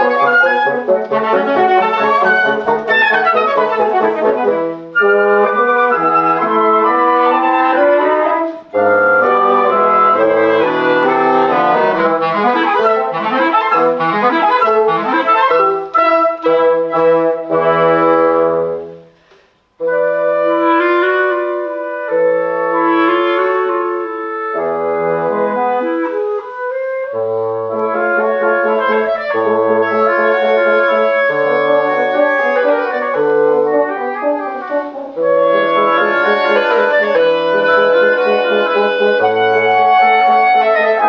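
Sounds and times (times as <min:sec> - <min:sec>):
low bassoon notes: 0:00.0 - 0:19.2, 0:19.8 - 0:41.0
woodwind quintet playing: 0:00.0 - 0:41.0.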